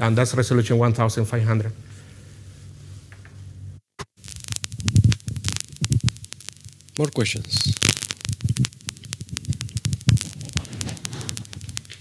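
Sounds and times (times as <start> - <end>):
quick irregular clicks: 4.2 - 12.0
soft low thumps: 7.7 - 11.8.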